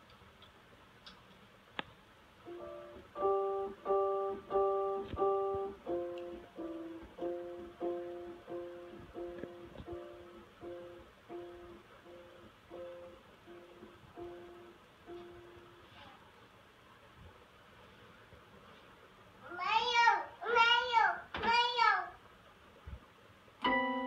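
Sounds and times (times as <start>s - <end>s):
toddler playing electronic keyboard: 2.4s - 16.0s, 23.6s - 24.0s.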